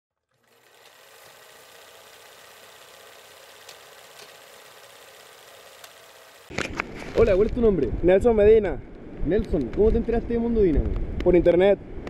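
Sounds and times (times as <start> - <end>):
faint mechanical whir: 0.2 - 11.2.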